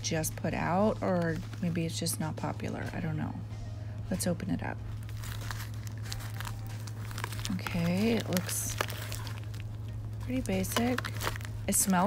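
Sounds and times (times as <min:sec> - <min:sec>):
steady low hum: 0:00.0 - 0:12.0
plastic and cardboard crinkling: 0:00.5 - 0:02.0, 0:04.8 - 0:12.0.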